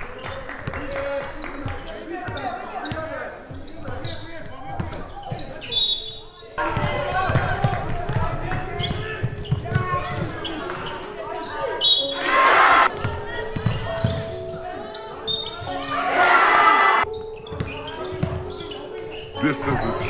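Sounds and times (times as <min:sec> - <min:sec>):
players' voices: 0:17.7 - 0:20.0.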